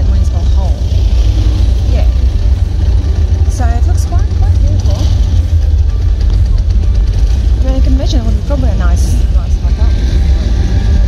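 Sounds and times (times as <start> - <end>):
steady low rumble: 0.0 - 11.0
woman speaking: 3.5 - 5.2, 7.6 - 10.2.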